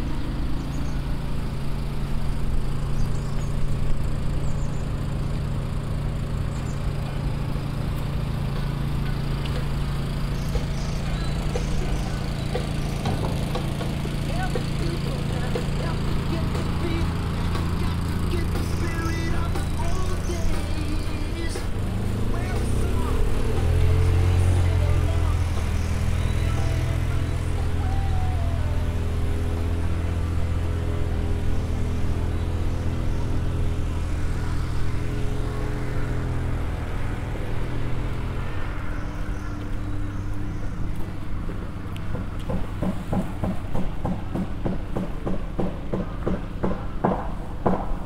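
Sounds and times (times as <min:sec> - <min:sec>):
engine idling: 0:00.0 - 0:48.0.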